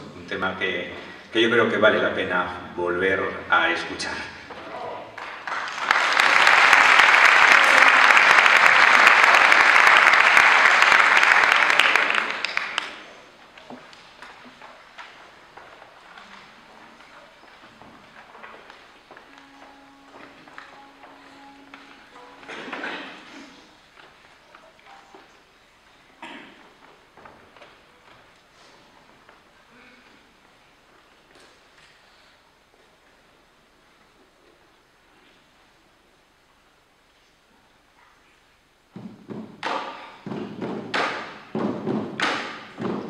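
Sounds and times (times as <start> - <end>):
audience applauding: 4.9 - 24.8
brief held note: 19.2 - 23.8.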